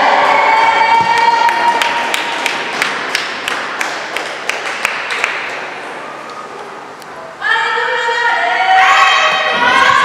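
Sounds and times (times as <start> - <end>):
crowd cheering: 0.0 - 6.6
spectators clapping in rhythm: 1.0 - 5.7.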